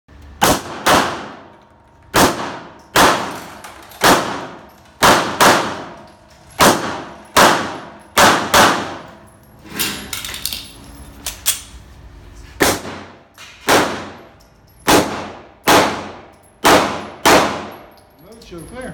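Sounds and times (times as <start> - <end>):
pistol shots echoing indoors: 0.4 - 9.3, 12.6 - 18.0.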